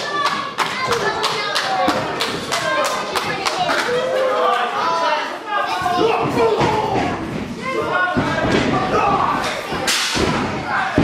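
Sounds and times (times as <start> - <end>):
crowd voices in a hall: 0.0 - 11.0.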